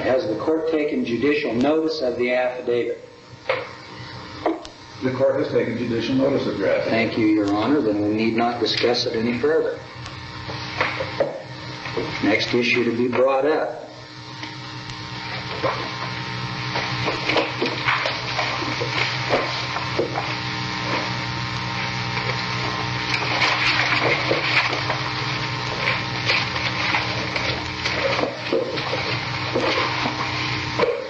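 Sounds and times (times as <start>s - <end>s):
mains hum: 0.0s - 31.0s.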